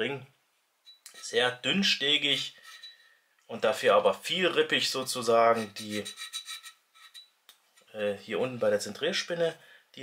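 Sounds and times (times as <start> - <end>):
fingers rubbing on metal: 2.4 - 3.0, 5.4 - 7.9.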